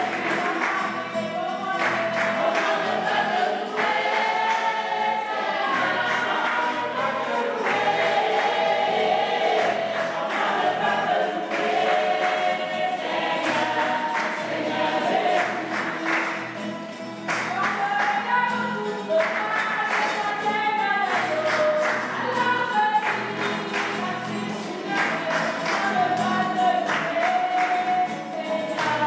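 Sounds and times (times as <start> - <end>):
choir singing gospel: 0.0 - 29.0.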